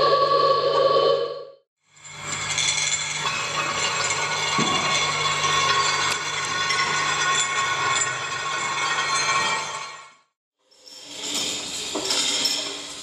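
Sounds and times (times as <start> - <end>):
grinding texture: 2.0 - 9.8.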